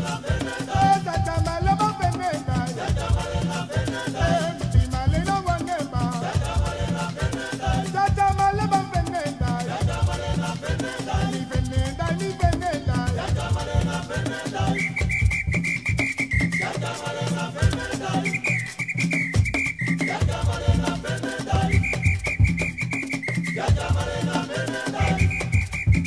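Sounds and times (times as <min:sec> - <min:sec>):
rhythmic percussion with shakers: 0:00.0 - 0:26.0.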